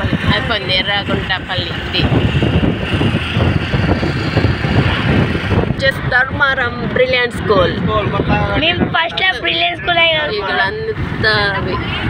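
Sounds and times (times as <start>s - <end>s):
car driving on road: 0.0s - 12.0s.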